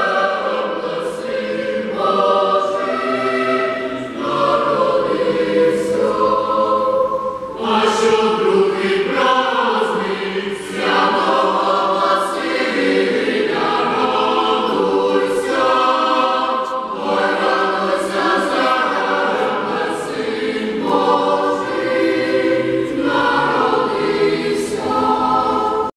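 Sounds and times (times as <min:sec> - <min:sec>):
choir singing a cappella: 0:00.0 - 0:25.9.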